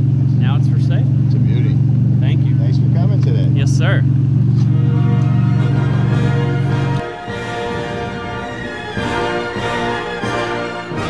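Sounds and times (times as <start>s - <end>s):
car engine idling: 0.0s - 11.0s
orchestral background music: 4.6s - 11.0s.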